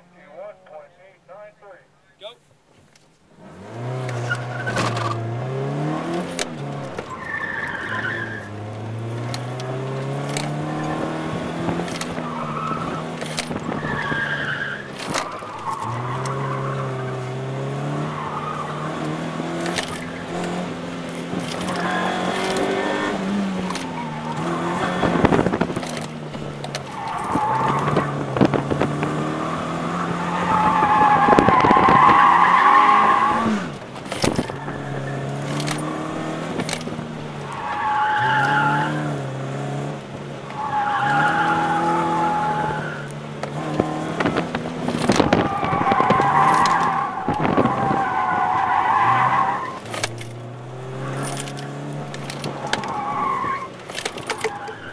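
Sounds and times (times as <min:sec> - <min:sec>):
car engine revving: 0:03.3 - 0:54.9
tires squealing: 0:03.4 - 0:54.9.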